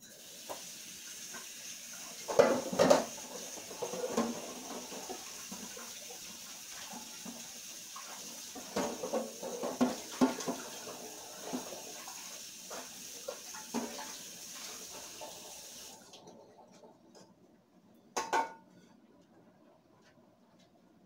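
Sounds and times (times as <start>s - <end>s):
tap running into sink: 0.4s - 0.8s, 2.2s - 5.8s, 6.8s - 11.9s, 12.7s - 15.5s
pot knocking and clattering: 2.2s - 5.2s, 8.6s - 10.7s, 18.2s - 18.8s.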